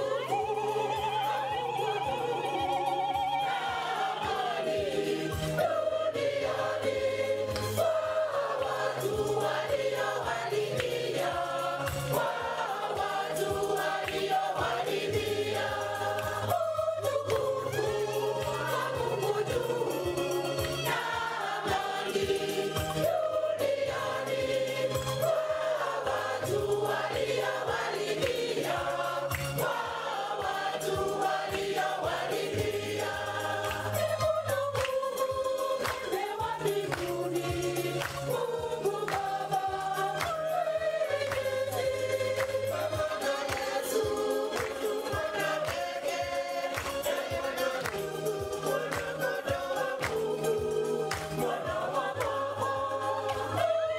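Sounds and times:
choir singing a hymn: 0:00.0 - 0:53.9
steady beat: 0:00.0 - 0:53.9.

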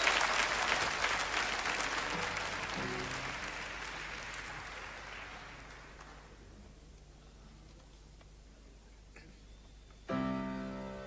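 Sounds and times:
piano chord ringing: 0:10.1 - 0:11.0.

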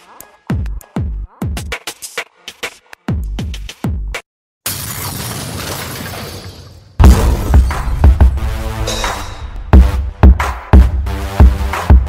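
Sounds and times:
hip hop beat with heavy bass kicks: 0:00.0 - 0:04.2, 0:07.0 - 0:12.0
crash sound effect: 0:04.7 - 0:10.0
hip hop beat: 0:07.5 - 0:12.0.

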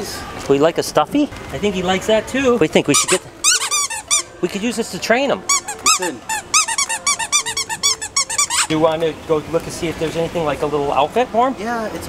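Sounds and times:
squeaky dog toy squeaking: 0:02.9 - 0:04.5, 0:05.4 - 0:08.8.

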